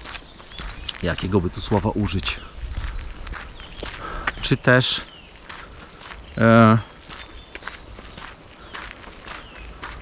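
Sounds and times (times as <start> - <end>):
footsteps on sandy dirt path: 0.0 - 10.0.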